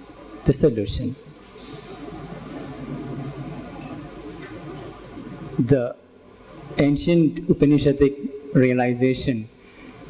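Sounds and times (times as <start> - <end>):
room tone with faint hiss: 0.0 - 10.0.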